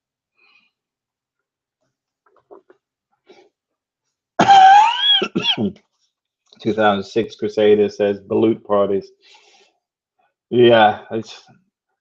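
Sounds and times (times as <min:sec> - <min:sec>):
man's loud cough-like vocal sound: 0:04.4 - 0:05.7.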